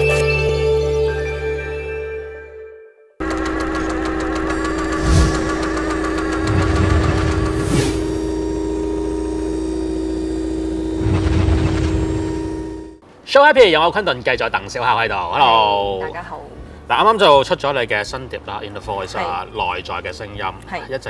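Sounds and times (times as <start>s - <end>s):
held tone over fast ticking: 3.2s - 13.0s.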